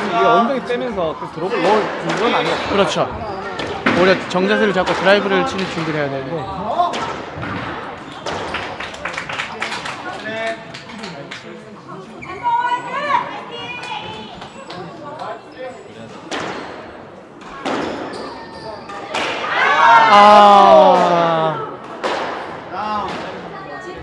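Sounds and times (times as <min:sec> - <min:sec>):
squash ball hitting rackets and walls: 0:17.4 - 0:18.3.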